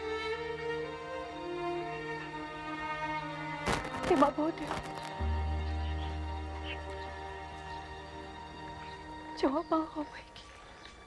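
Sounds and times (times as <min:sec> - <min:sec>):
sustained chords over low bass: 0:04.8 - 0:09.2.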